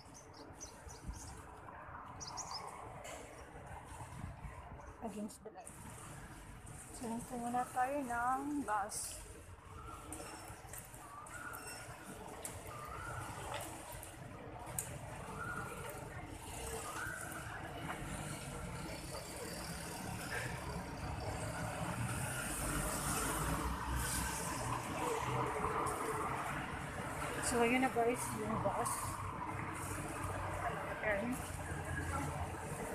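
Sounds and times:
road traffic noise: 0:00.0 - 0:32.9
faint voices: 0:06.8 - 0:21.4.

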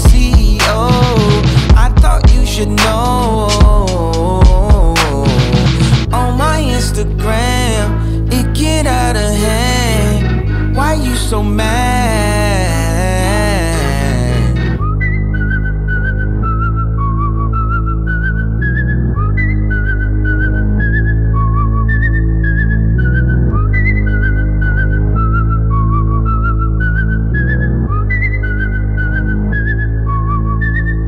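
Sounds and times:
deep bass chords: 0:00.0 - 0:31.0
whistled melody with trills: 0:00.0 - 0:31.0.

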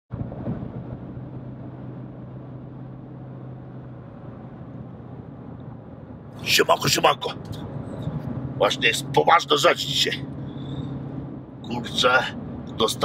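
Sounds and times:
car road and engine noise: 0:00.1 - 0:13.0
low hum: 0:00.1 - 0:13.0.

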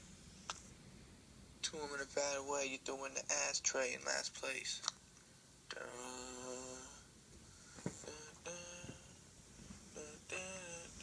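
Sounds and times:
held pitched notes: 0:10.0 - 0:11.0.

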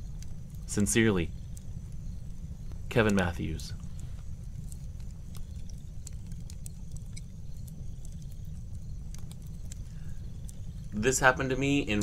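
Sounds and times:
low fire rumble: 0:00.0 - 0:12.0
wood fire crackling and popping: 0:00.0 - 0:12.0.

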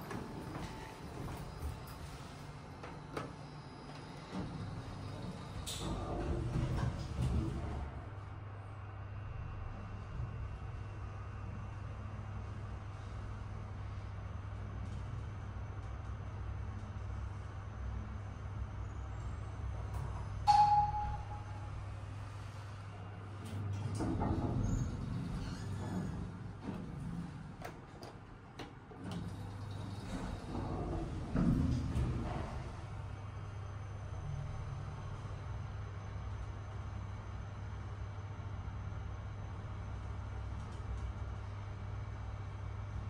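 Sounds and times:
elevator low hum: 0:00.0 - 0:43.0
elevator doors sliding shut: 0:04.0 - 0:08.2, 0:20.0 - 0:33.2
elevator button click: 0:20.5 - 0:21.7
short chime: 0:20.5 - 0:21.8.

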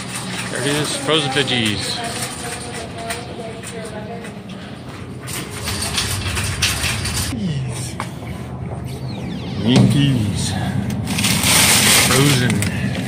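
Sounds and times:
indistinct voices of shoppers: 0:00.0 - 0:09.7
steady low hum: 0:01.9 - 0:13.0.

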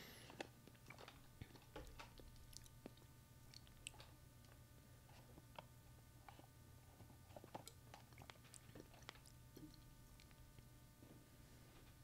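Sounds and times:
soft chewing clicks: 0:00.3 - 0:10.8.

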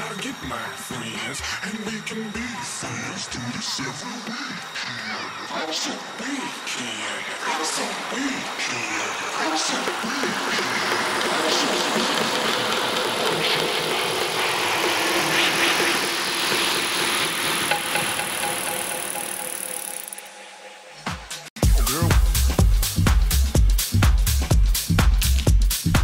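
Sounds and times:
electronic dance music: 0:00.0 - 0:26.0.

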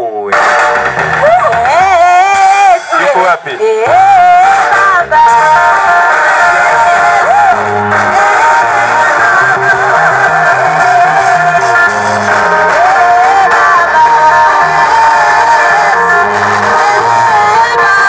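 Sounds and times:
band playing with bass line: 0:00.0 - 0:18.0
church choir singing: 0:04.6 - 0:18.0.

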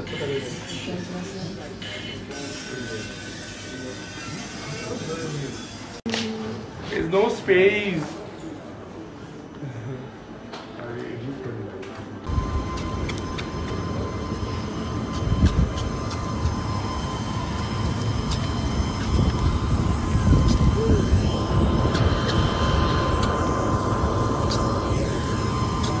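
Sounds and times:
jet engine whine: 0:12.2 - 0:26.0
loud continuous rumble: 0:12.2 - 0:26.0.

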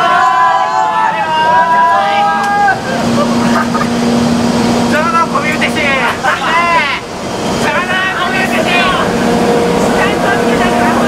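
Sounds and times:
voices of people: 0:00.0 - 0:04.2, 0:04.8 - 0:11.0
electric locomotive humming: 0:00.0 - 0:11.0
train running noise: 0:00.0 - 0:11.0.

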